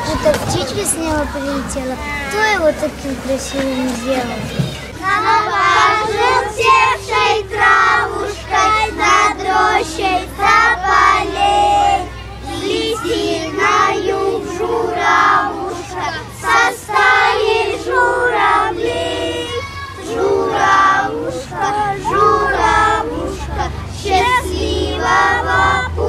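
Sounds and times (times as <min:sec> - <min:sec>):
young children singing in unison: 0:00.0 - 0:26.0.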